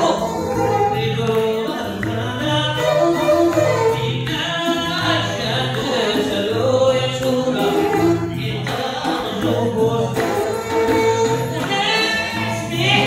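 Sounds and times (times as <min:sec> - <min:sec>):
group vocals: 0:00.0 - 0:13.0
lead singer at a microphone: 0:00.0 - 0:13.0
plucked lutes playing rhythm: 0:00.0 - 0:13.0.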